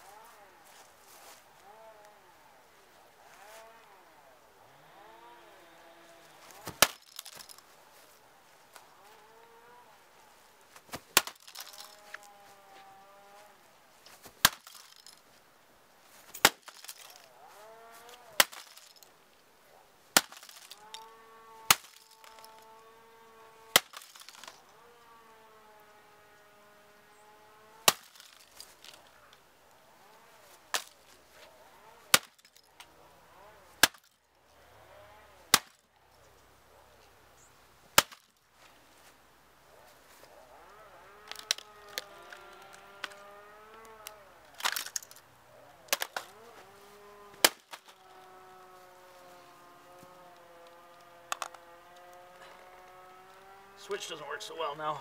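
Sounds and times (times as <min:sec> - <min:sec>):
plastic cracking and breaking: 0:06.6 - 0:07.6, 0:10.9 - 0:12.1, 0:14.4 - 0:15.2, 0:16.3 - 0:17.2, 0:18.4 - 0:19.1, 0:21.7 - 0:22.6, 0:23.8 - 0:24.6, 0:44.5 - 0:45.2, 0:45.9 - 0:46.4, 0:47.4 - 0:48.0.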